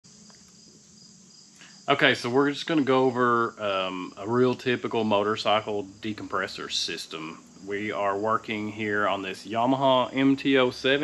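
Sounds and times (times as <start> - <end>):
high-pitched hiss: 0.0 - 11.0
man's voice: 1.9 - 11.0.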